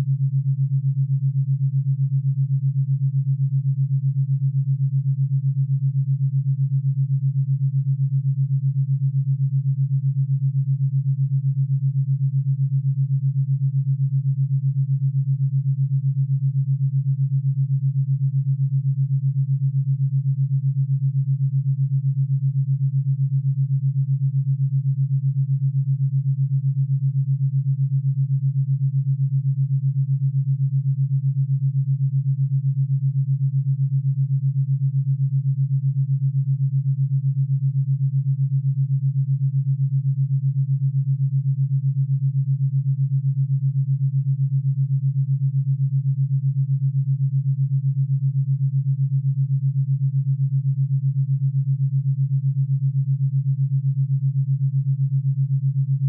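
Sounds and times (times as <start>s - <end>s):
pulsing low hum: 0.0s - 56.0s.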